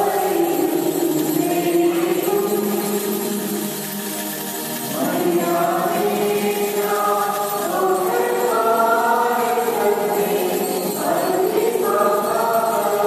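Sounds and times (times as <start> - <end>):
choir singing a hymn: 0.0 - 3.9, 4.9 - 13.0.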